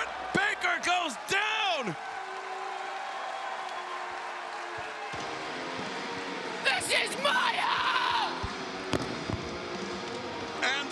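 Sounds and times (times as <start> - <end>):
arena crowd noise: 0.0 - 10.9.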